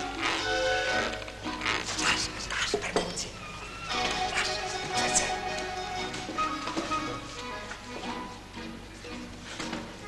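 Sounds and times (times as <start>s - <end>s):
film soundtrack music: 3.9s - 10.0s.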